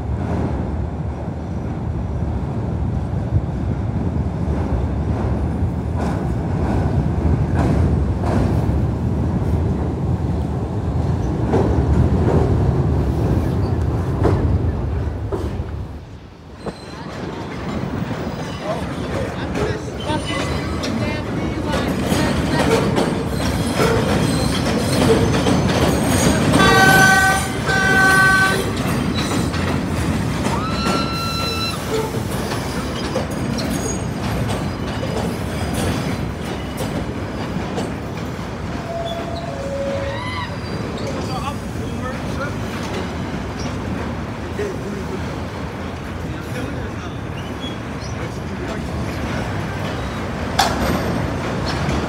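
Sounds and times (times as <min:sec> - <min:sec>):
train wheels rumbling on rails: 0:00.0 - 0:52.0
high wheel squeal: 0:16.6 - 0:17.3, 0:30.5 - 0:35.4, 0:38.8 - 0:42.1
train horn blasts: 0:26.6 - 0:28.8, 0:38.8 - 0:40.3.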